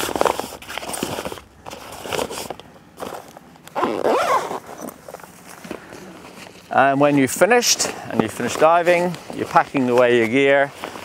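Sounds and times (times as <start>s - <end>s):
fabric bag rustling and scraping: 0.0s - 11.0s.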